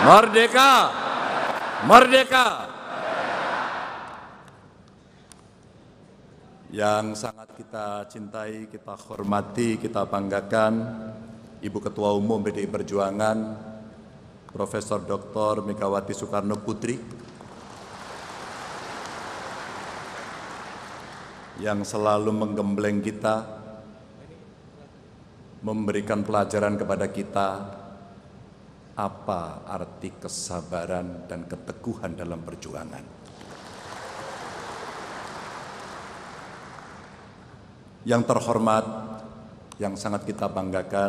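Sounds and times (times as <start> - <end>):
audience applauding: 17.4 - 21.6, 33.3 - 37.4.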